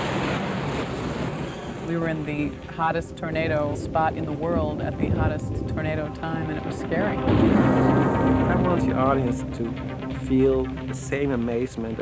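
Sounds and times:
rushing storm noise: 0:00.0 - 0:09.0.

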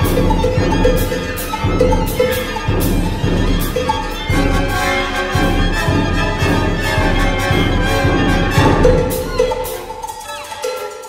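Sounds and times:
downward-sliding violin notes: 0:00.0 - 0:10.9
orchestral violin music: 0:00.0 - 0:11.0.

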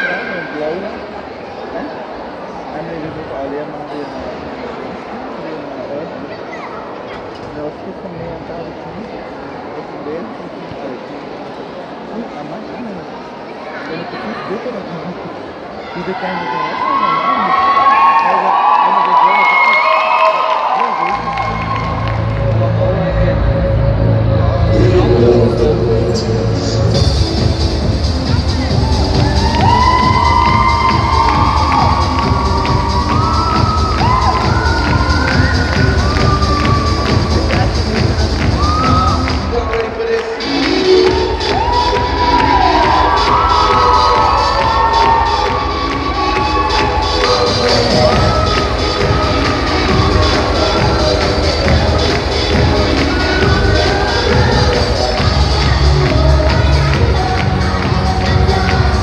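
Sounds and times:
dance music over loudspeakers: 0:16.0 - 0:59.0
children cheering and shouting: 0:28.7 - 0:39.7, 0:41.0 - 0:59.0.

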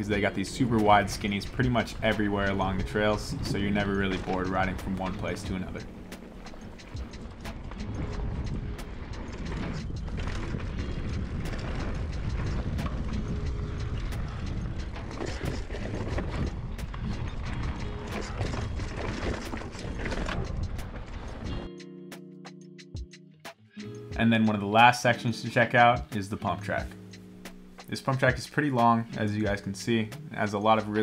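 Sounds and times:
bike clicking and rattling: 0:00.0 - 0:21.7
bike tyre and wind noise: 0:00.0 - 0:21.7
faint music: 0:00.0 - 0:22.0, 0:23.8 - 0:31.0.

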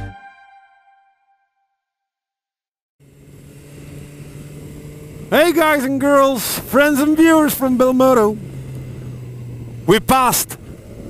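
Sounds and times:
motorcycle engine running: 0:03.0 - 0:11.0.

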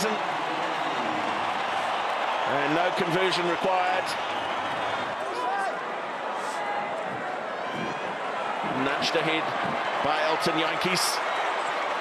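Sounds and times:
crowd hubbub of many voices: 0:00.0 - 0:12.0.

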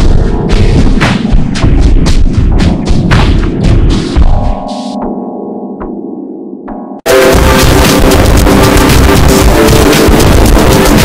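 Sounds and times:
distorted bass thuds: 0:00.0 - 0:11.0
dense low rumble: 0:07.1 - 0:10.6.

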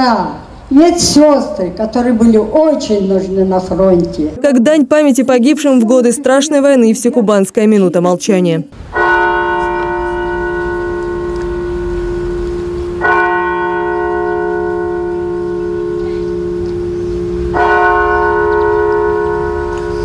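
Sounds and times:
deep bell tolling: 0:08.9 - 0:20.0.

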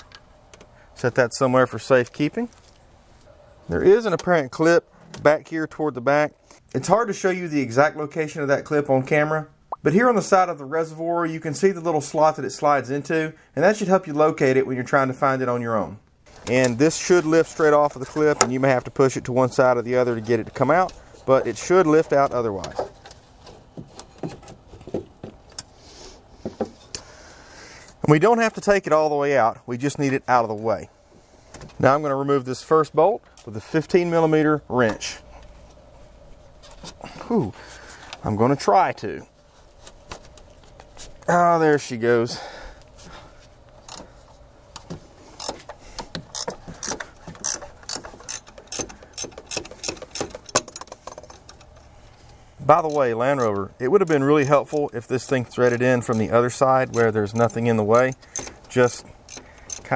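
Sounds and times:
ratchet wrench clicking: 0:43.9 - 0:44.1, 0:45.4 - 0:45.6, 0:46.3 - 0:51.7, 0:52.8 - 0:59.9.

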